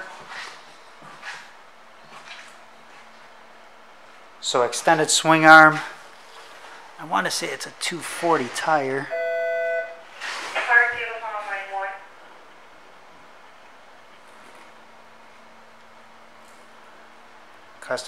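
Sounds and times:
faint room hiss: 0:00.0 - 0:18.0
steady electronic tone: 0:09.0 - 0:10.0.

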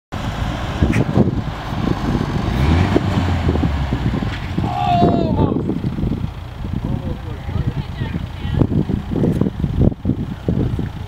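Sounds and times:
off-road engine running under load: 0:00.1 - 0:11.0.

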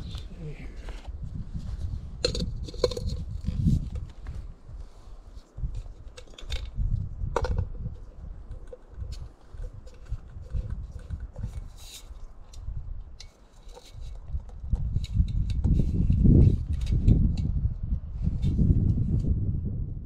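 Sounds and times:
low rumble: 0:00.0 - 0:04.7.

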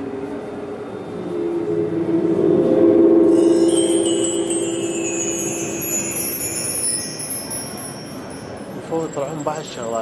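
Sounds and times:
high ringing tones: 0:00.7 - 0:10.0
low chime tone: 0:00.9 - 0:10.0.

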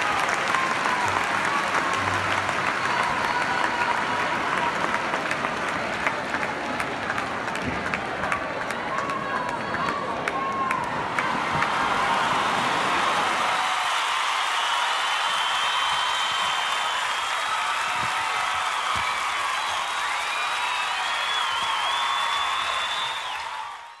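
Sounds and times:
audience applauding: 0:00.0 - 0:24.0.

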